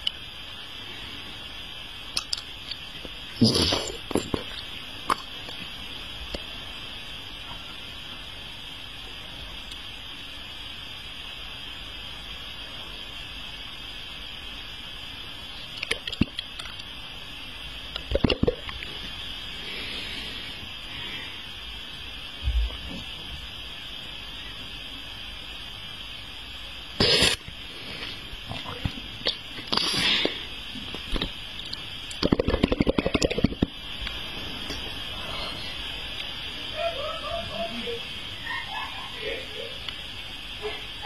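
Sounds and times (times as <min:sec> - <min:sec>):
steady background hiss: 0:00.0 - 0:41.0
wet mouth smacks and clicks: 0:02.2 - 0:02.8.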